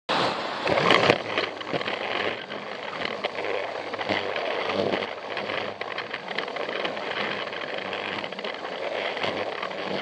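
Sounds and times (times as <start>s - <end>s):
clicks over track joints: 0.6s - 10.0s
toy train motor and wheels rattling: 0.6s - 10.0s.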